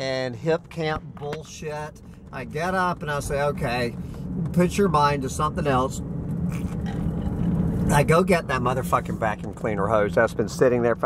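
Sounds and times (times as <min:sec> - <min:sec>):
car engine humming: 0:00.0 - 0:11.0
tyres on road: 0:00.0 - 0:11.0.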